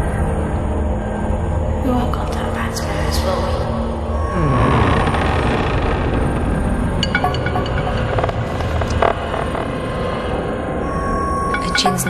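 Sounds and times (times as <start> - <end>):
rumbling electronic noise texture: 0.2 - 12.0
electronic blips and clicks: 7.0 - 9.9, 11.4 - 12.0.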